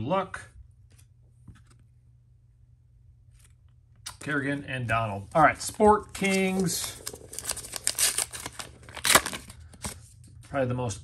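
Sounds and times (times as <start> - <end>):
wrapper being torn open: 6.1 - 10.0.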